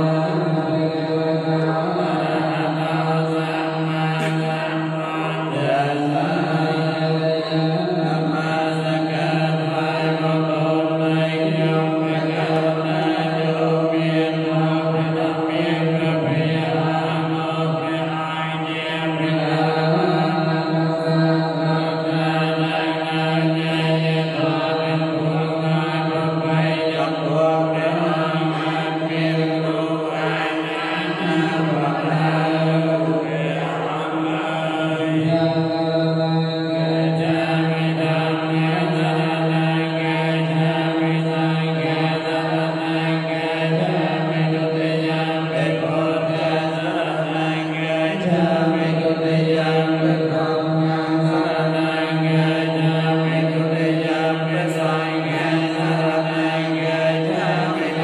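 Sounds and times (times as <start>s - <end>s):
monks chanting in unison: 0.0s - 58.0s.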